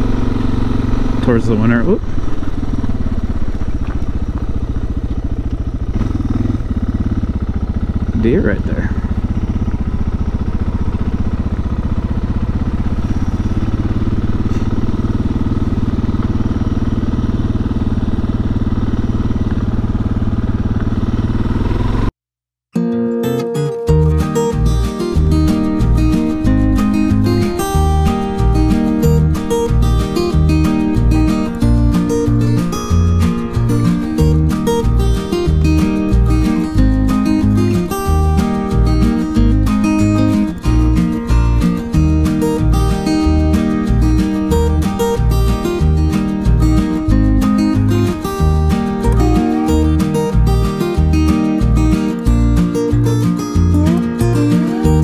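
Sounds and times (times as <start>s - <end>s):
strummed acoustic guitar music: 0.0s - 5.3s, 22.7s - 55.0s
motorcycle engine running: 0.0s - 22.1s, 23.9s - 55.0s.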